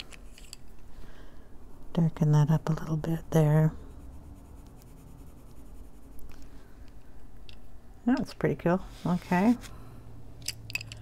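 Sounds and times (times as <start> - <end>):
pencil scratching on paper: 3.8 - 6.4.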